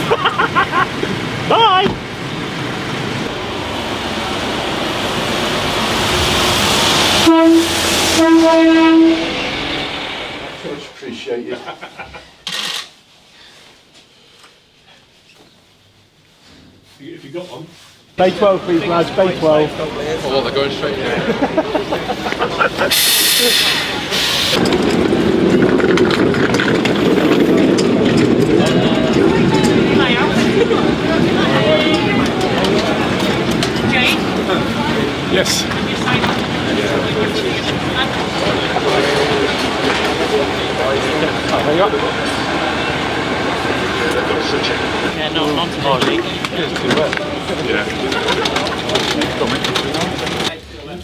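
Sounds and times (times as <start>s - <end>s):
coach engine and tyre noise: 0.0s - 12.9s, 18.1s - 51.0s
people talking: 1.5s - 2.0s, 10.6s - 11.9s, 17.0s - 24.6s, 28.4s - 51.0s
coach horn blasts: 7.2s - 9.4s.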